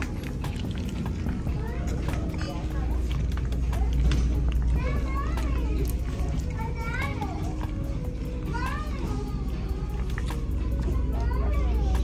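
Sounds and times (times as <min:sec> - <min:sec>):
background music: 0:00.0 - 0:12.0
children calling: 0:00.0 - 0:12.0.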